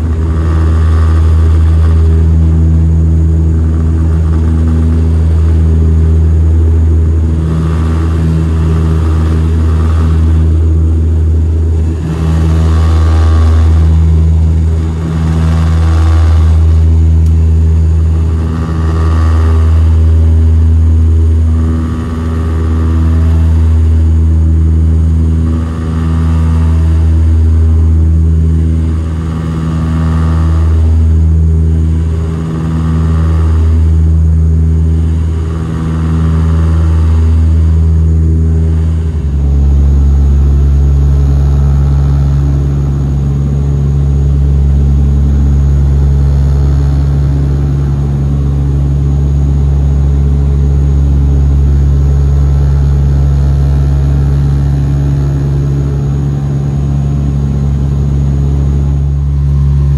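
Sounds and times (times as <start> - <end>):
deep turboprop engine drone: 0.0 - 59.9.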